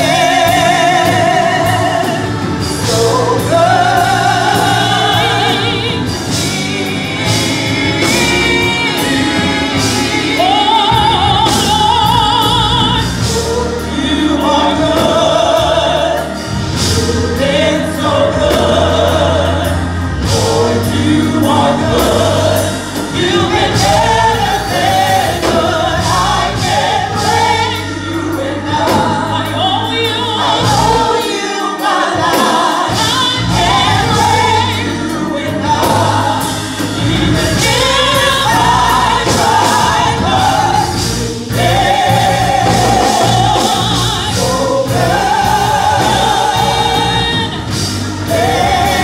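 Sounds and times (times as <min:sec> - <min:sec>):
gospel choir singing: 0:00.0 - 0:49.0
organ and band accompaniment: 0:00.0 - 0:49.0.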